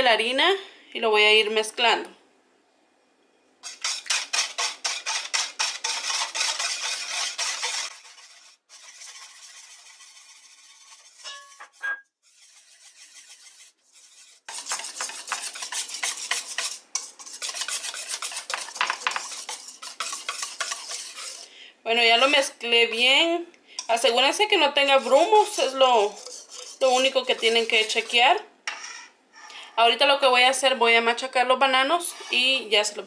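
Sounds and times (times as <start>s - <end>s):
wire whisk scraping metal bowl: 3.6s - 21.5s, 23.8s - 29.7s, 31.9s - 32.6s.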